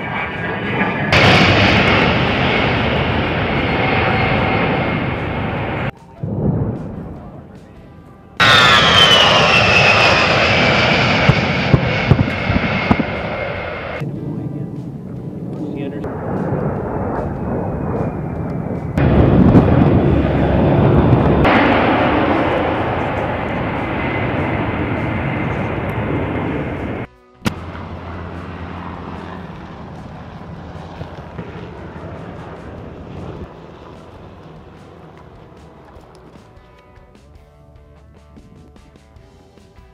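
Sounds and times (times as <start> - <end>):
jet engines passing low: 0.0 - 39.2.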